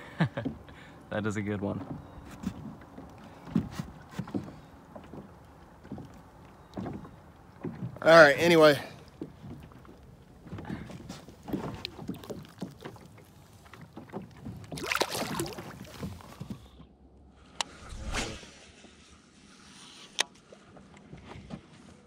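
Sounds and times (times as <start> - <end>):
water lapping against boat hull: 0.0 - 16.9.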